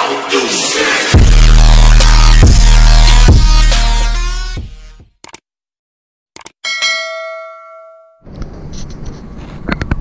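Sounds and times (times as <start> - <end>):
notification bell ding: 6.6 - 8.2.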